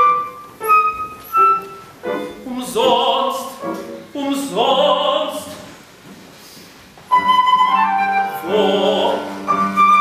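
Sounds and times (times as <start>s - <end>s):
flute playing: 0.0s - 2.4s, 7.1s - 10.0s.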